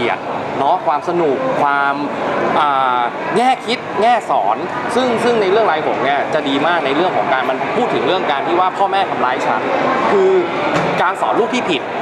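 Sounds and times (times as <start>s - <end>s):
man talking: 0.0s - 11.9s
steady background noise: 0.0s - 12.0s.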